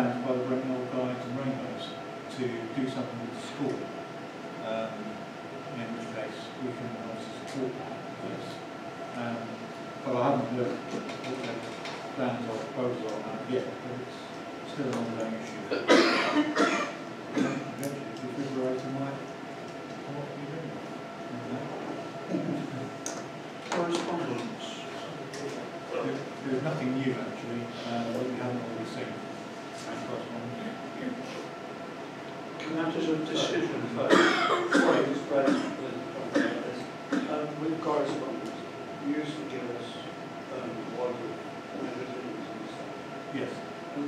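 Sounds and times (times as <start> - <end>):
low talk: 4.6 - 31.6, 32.5 - 44.0
person coughing: 15.7 - 17.7, 33.4 - 37.4.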